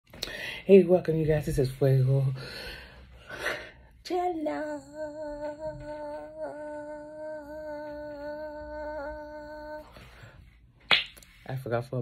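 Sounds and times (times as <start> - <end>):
woman singing long note: 4.1 - 10.0.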